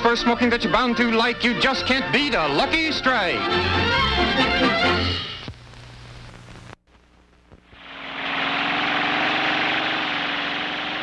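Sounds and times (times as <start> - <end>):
dune buggy engine running: 7.8 - 11.0.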